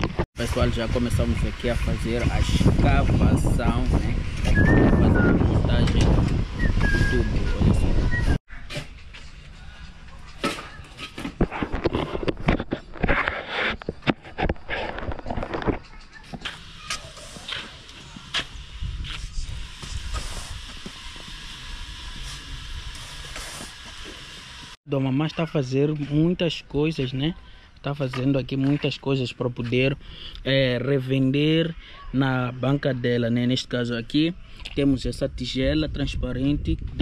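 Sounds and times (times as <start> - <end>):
hoe and shovel digging soil: 10.3 - 21.4, 22.0 - 24.7.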